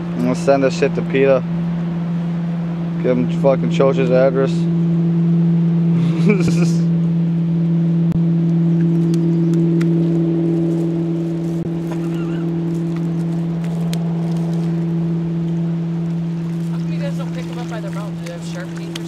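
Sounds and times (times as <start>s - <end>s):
motorboat engine droning: 0.0s - 19.0s.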